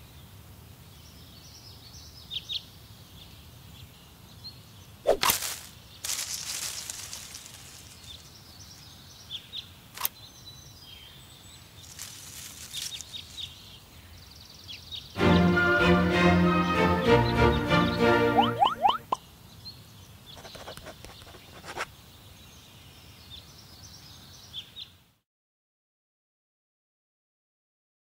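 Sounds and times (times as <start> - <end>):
hedge shears snipping: 5.1 - 8.2
foliage rustling: 5.1 - 8.9, 11.6 - 14.0
faint bird chirps: 18.3 - 25.0.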